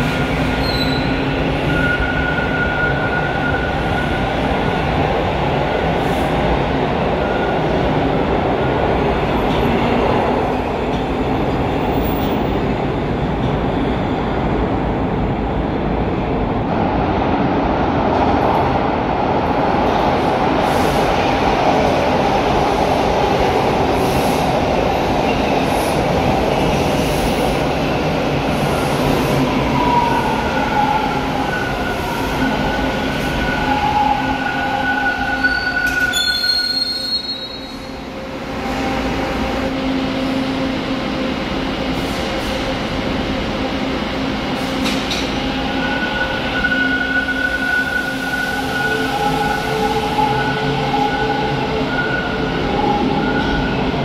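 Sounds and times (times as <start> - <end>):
train wheels rumbling on track: 0.0 - 54.0
high-pitched wheel squeals: 33.6 - 38.0.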